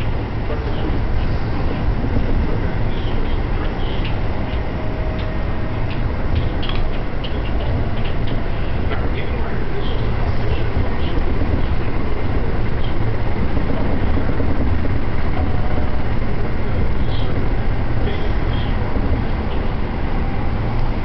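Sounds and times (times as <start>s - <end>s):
moving train rumble inside carriage: 0.0s - 21.0s.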